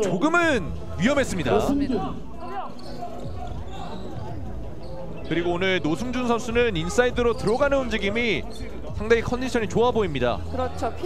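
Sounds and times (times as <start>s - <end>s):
gymnasium hall noise: 0.0s - 11.0s.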